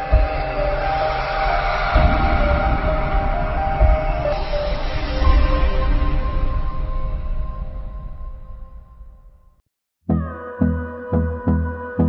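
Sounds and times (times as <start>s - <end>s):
deep low hit: 0.0s - 9.6s.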